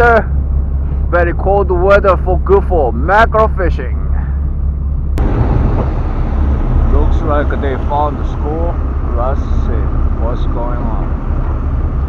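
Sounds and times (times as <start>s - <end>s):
boat engine rumbling: 0.0s - 12.0s
churning wake: 0.0s - 12.0s
wind rushing: 4.4s - 12.0s.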